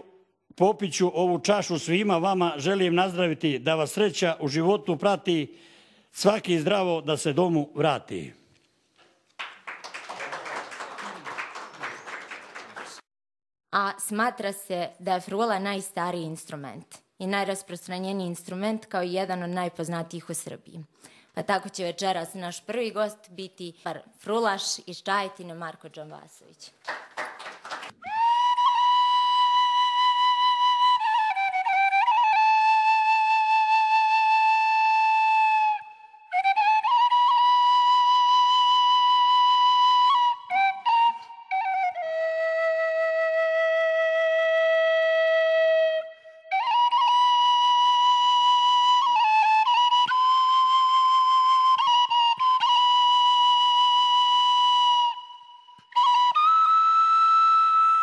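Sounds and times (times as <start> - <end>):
wooden flute long held note: 28.0 - 58.0.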